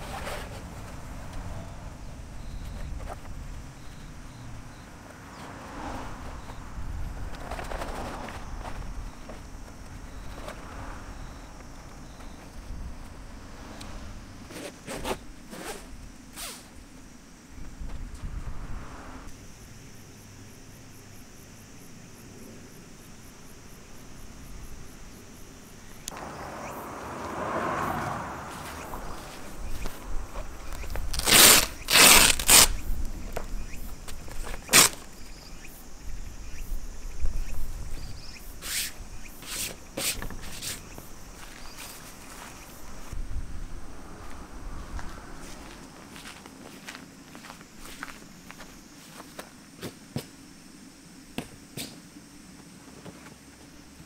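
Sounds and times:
insects trilling: 0:00.0 - 0:54.0
footsteps on grass: 0:28.5 - 0:31.3, 0:44.2 - 0:50.0
tent flap ripping open: 0:31.1 - 0:32.8, 0:34.6 - 0:35.1.

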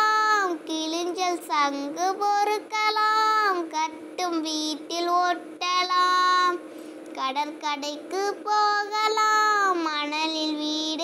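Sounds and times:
child singing: 0:00.0 - 0:06.6, 0:07.2 - 0:11.0.

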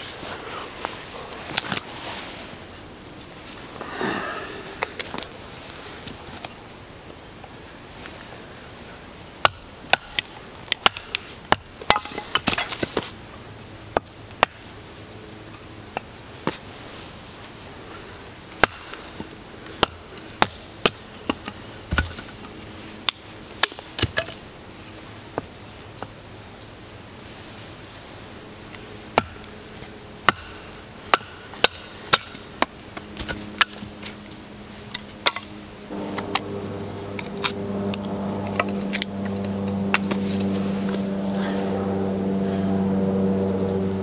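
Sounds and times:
stick cracking: 0:35.2 - 0:40.6.

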